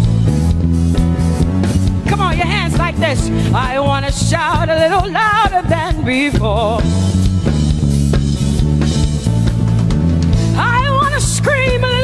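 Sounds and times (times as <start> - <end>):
band playing: 0.0 - 12.0
low bass line: 0.0 - 12.0.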